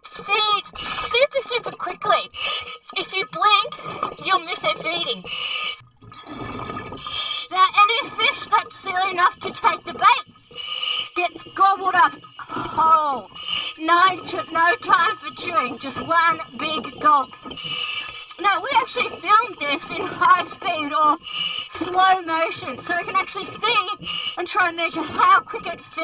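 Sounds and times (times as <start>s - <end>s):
person speaking: 2.9s - 5.2s, 7.5s - 10.2s, 11.2s - 17.3s, 18.4s - 21.2s.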